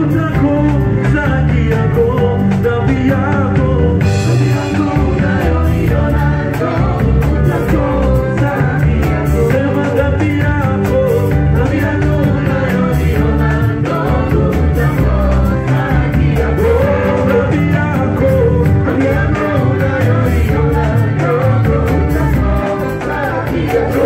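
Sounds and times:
drum kit: 0.0 - 24.0
electric guitar: 0.0 - 24.0
group singing: 0.0 - 24.0
keyboard: 0.0 - 24.0.

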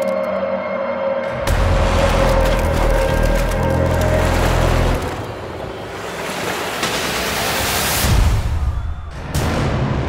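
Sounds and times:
deep bass music: 1.3 - 5.2.

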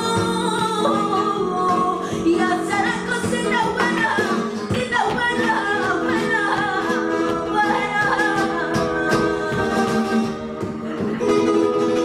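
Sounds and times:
woman singing: 0.0 - 11.6
acoustic guitar: 0.0 - 12.0.

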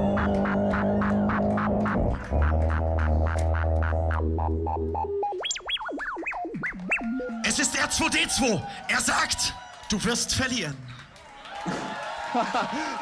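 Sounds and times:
percussive beatbox hits: 0.0 - 7.2
sustained bass: 0.0 - 7.5
looped vocal sounds: 0.0 - 7.6.

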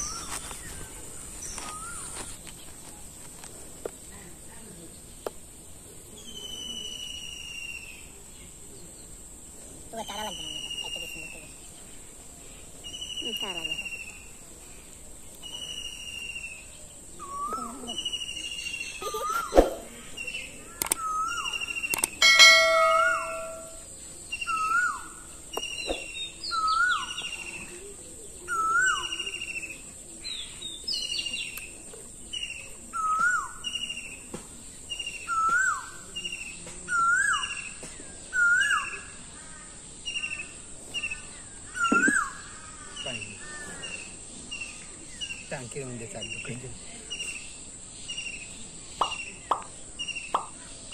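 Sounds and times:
songbird whistling call: 0.0 - 0.4, 15.4 - 27.6, 28.5 - 29.7, 32.4 - 34.2, 34.9 - 39.1, 41.0 - 42.4
sharp click: 20.8 - 21.0, 21.9 - 22.2
short ringing ding: 22.2 - 23.8.

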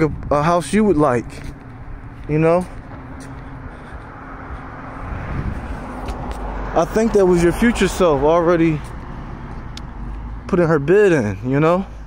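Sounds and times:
car tyres and engine rumble: 0.0 - 12.0.

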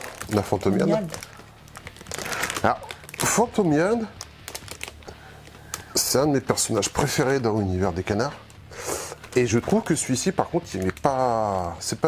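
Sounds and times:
plastic packaging crackling: 0.0 - 11.7.

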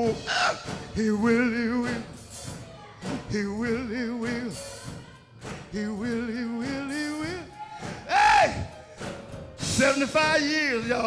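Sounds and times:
man singing gospel: 0.0 - 2.4, 3.1 - 4.8, 5.6 - 11.0.

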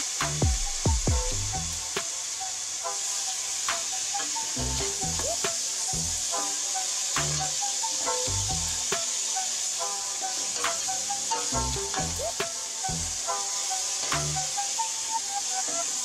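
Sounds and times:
background music with bass beat: 0.0 - 2.1, 4.5 - 6.3, 7.2 - 9.0, 11.5 - 13.3, 14.1 - 14.6
meat sizzling in a pot: 0.0 - 16.0.

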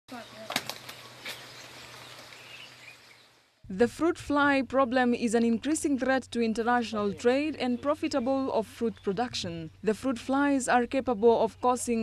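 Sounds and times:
outdoor background noise: 0.1 - 12.0
steady low hum: 3.6 - 12.0.

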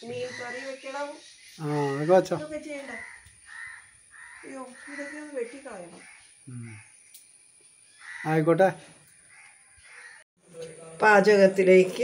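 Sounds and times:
crow cawing: 0.0 - 7.1, 7.9 - 10.2.

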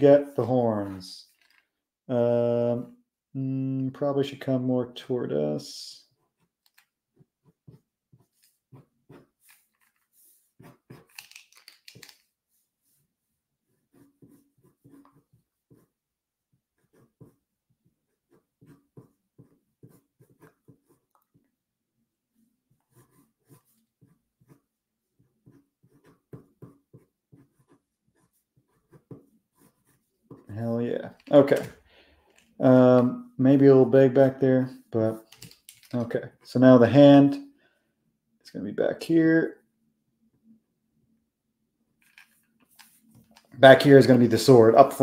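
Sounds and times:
pencil scratching on paper: 6.0 - 11.2, 12.2 - 21.5, 22.3 - 30.6.

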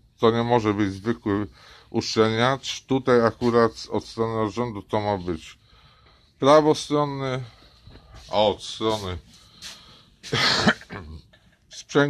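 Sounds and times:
man coughing: 10.3 - 11.6.

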